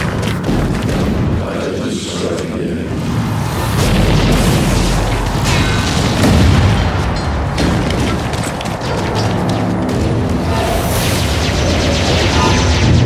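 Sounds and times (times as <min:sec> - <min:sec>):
dramatic music score: 0:00.0 - 0:13.0
deep booming explosions: 0:03.6 - 0:13.0.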